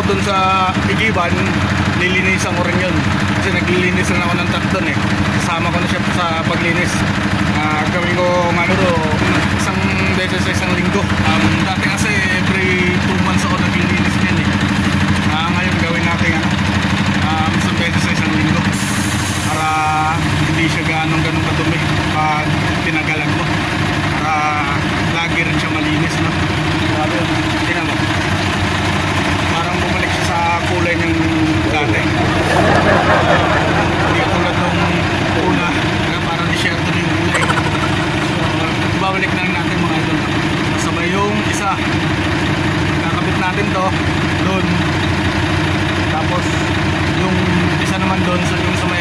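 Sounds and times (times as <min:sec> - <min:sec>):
voices: 0:00.0 - 0:18.8, 0:19.4 - 0:49.0
diesel truck engine idling: 0:00.0 - 0:49.0.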